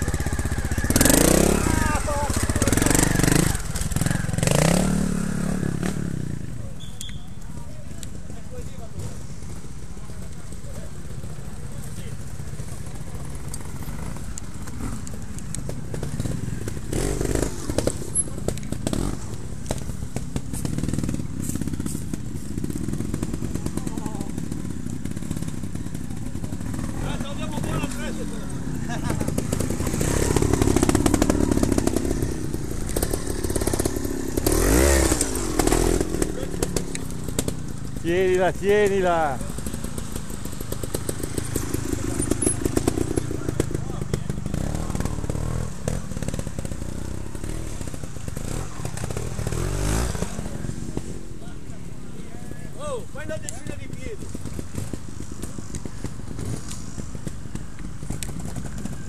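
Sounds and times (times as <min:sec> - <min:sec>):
motorcycle engine revving: 0:00.0 - 0:52.2, 0:52.8 - 0:59.0.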